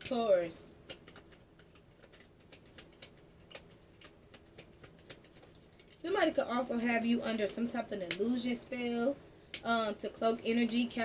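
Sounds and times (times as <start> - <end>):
cards being shuffled: 0.8 - 6.0.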